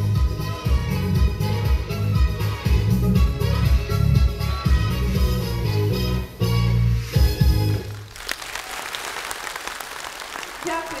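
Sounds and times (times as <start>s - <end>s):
song backing music: 0.0s - 8.2s
audience applause: 7.9s - 11.0s.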